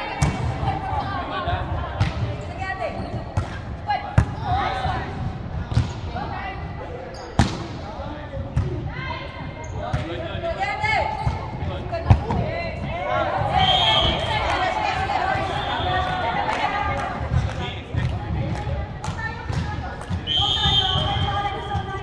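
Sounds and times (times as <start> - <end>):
volleyball impacts: 0.1 - 1.0, 1.6 - 2.4, 7.4 - 8.8
women calling and shouting: 11.9 - 17.2.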